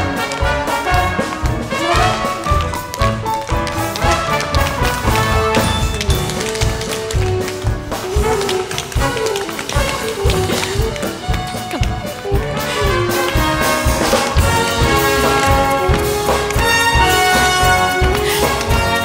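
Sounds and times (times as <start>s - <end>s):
orchestra playing swing music: 0.0s - 19.0s
tap shoes on wooden floor: 0.0s - 19.0s.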